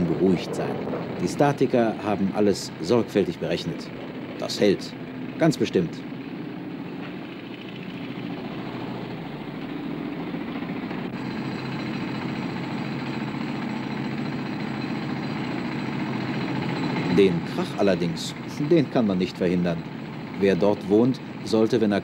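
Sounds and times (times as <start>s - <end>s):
rattling construction machine: 0.0s - 22.0s.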